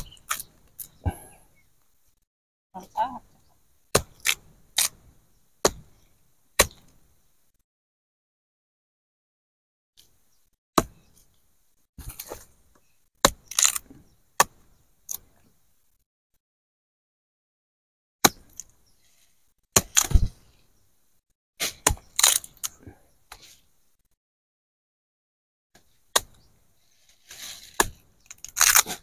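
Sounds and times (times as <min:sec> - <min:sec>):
roots cracking: 0:00.0 - 0:01.2, 0:13.2 - 0:14.5, 0:21.7 - 0:22.8, 0:27.2 - 0:29.0
machete chopping: 0:03.9 - 0:06.0, 0:06.6 - 0:07.0, 0:10.8 - 0:11.0, 0:13.2 - 0:15.3, 0:18.2 - 0:18.7, 0:19.8 - 0:20.3, 0:21.6 - 0:22.8, 0:26.1 - 0:26.5, 0:27.6 - 0:29.0.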